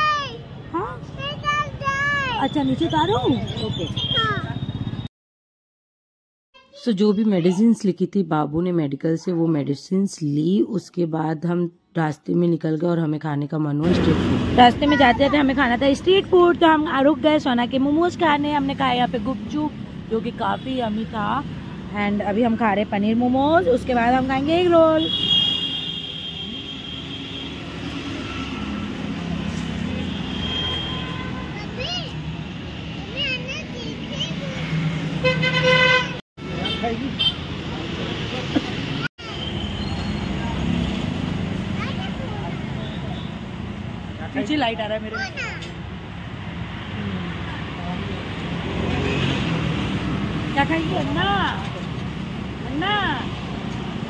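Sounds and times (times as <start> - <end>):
road traffic rumble: 0.0 - 5.1, 13.7 - 54.0
vehicle engines running: 13.8 - 25.0, 31.2 - 54.0.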